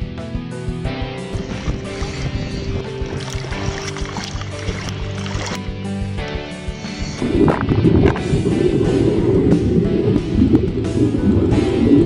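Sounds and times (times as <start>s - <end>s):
background music: 0.0s - 12.0s
water sloshing and splashing: 1.3s - 5.6s.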